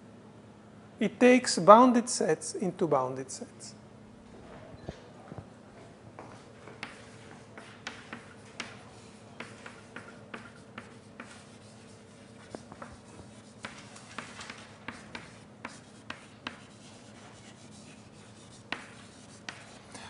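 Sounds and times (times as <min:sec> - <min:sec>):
low room hum: 0:00.0 - 0:20.0
writing taps and scratches on board: 0:06.2 - 0:20.0.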